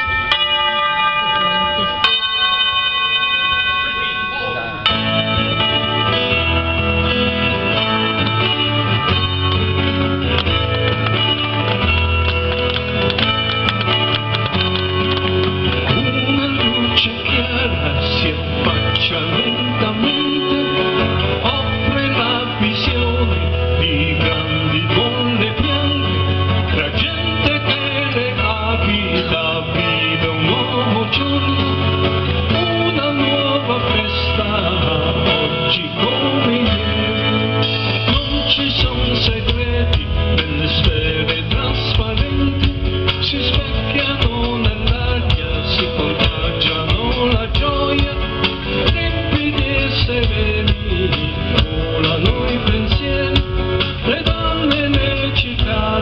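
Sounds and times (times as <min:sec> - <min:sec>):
held ringing chord: 0:00.0 - 0:22.9
rock band playing: 0:00.0 - 0:56.0.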